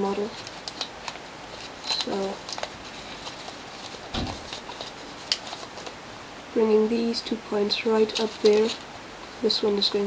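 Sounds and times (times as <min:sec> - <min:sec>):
paper crinkling as it is folded: 0:00.0 - 0:06.0, 0:07.2 - 0:10.0
soft thump: 0:04.1 - 0:04.5.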